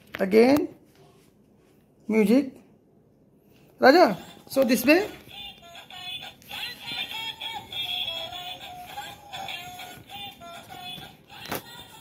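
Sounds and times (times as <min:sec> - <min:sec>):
electronic toy melody: 0:05.3 - 0:11.2.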